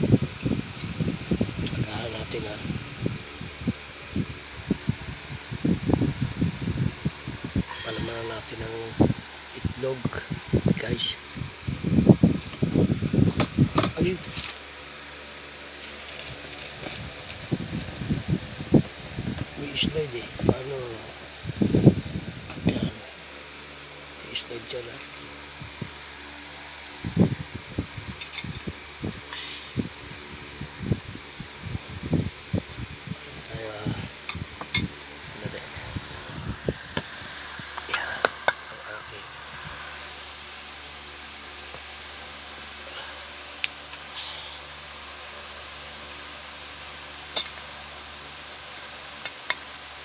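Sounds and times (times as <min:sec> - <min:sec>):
steady low hum: 0:00.0 - 0:50.0
person talking: 0:01.7 - 0:02.8, 0:07.7 - 0:11.2, 0:13.8 - 0:14.3, 0:19.6 - 0:21.2, 0:22.6 - 0:23.1, 0:24.2 - 0:25.1, 0:33.4 - 0:34.1, 0:35.3 - 0:36.5, 0:37.8 - 0:40.0.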